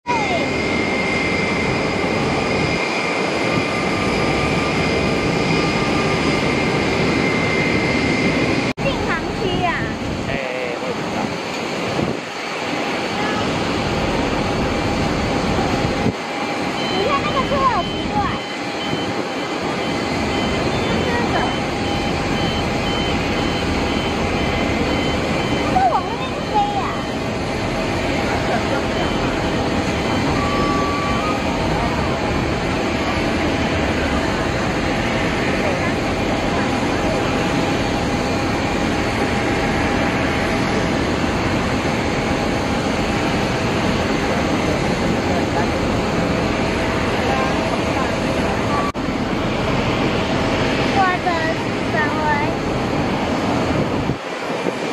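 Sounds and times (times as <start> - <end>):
jet engines running: 0.0 - 54.9
faint constant whine: 4.2 - 54.9.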